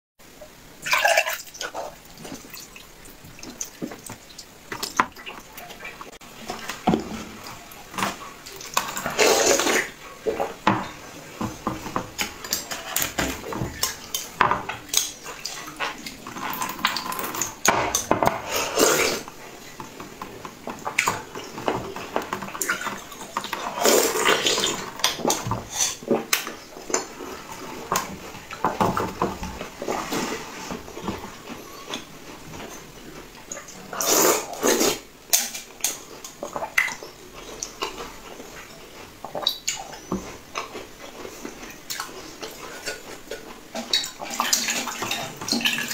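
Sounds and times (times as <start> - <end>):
wet slurping: 8.5 - 10.4, 18.4 - 19.3, 22.6 - 26.0, 33.6 - 35.1.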